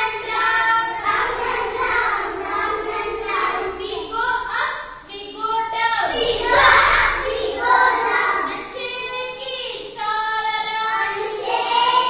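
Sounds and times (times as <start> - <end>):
children singing: 0.0 - 5.1, 6.0 - 12.0.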